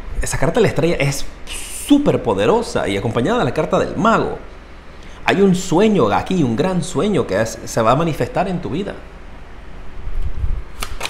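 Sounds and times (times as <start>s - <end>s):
cards shuffling clicks: 10.8s - 11.0s.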